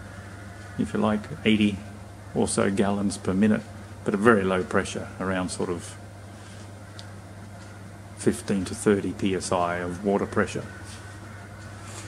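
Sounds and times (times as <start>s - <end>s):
low hum with faint hiss: 0.0s - 12.0s.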